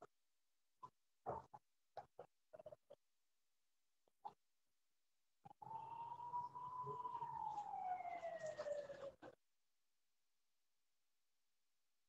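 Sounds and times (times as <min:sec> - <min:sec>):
higher falling siren tone: 0:05.6 - 0:09.1
siren wailing: 0:05.6 - 0:09.2.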